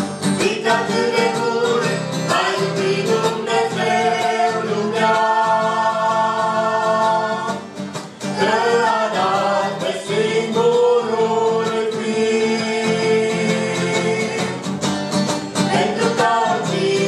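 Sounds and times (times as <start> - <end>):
acoustic guitar: 0.0 - 17.0
group of people singing gospel: 0.4 - 14.8, 15.5 - 17.0.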